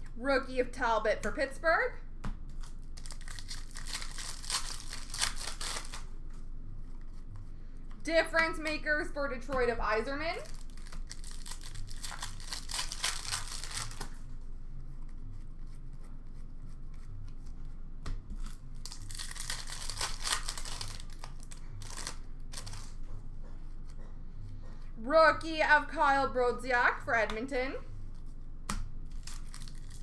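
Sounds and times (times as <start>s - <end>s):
wrapper tearing and crinkling: 2.5s - 6.1s, 10.4s - 14.2s, 18.4s - 23.0s, 29.1s - 30.0s.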